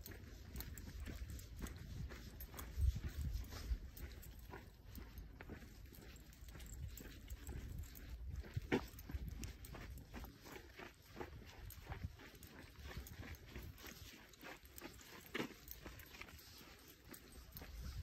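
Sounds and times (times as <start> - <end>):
footsteps crunching on snowy dirt: 0.0 - 18.0.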